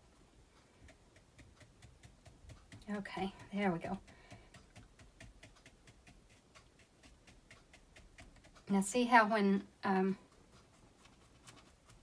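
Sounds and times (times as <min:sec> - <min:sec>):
brush tapping on canvas: 0:00.8 - 0:08.8.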